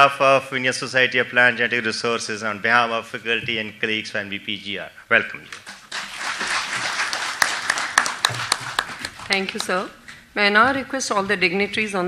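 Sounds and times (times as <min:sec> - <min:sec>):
audience applauding: 0:05.8 - 0:09.9.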